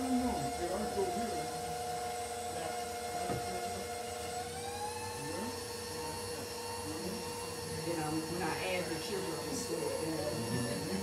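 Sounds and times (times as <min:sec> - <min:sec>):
stand mixer motor whining: 0:00.0 - 0:11.0.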